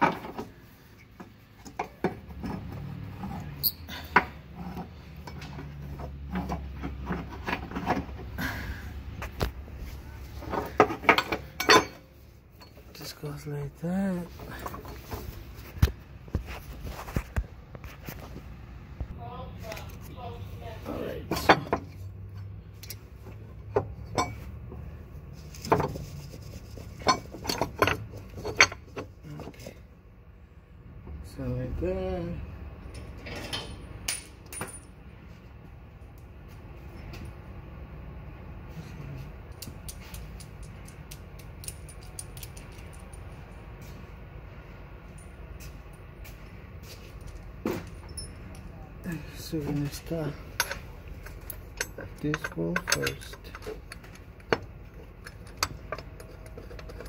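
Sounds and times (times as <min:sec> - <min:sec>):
metal tools clinking: 0:03.2 - 0:04.3, 0:10.4 - 0:15.0, 0:23.9 - 0:24.6, 0:26.7 - 0:29.8, 0:32.9 - 0:35.0, 0:39.5 - 0:43.4, 0:47.1 - 0:57.0.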